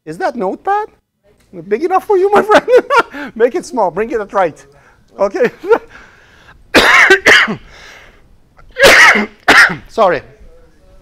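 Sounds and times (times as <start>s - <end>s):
man coughing hard: 6.7s - 7.7s, 8.7s - 9.9s.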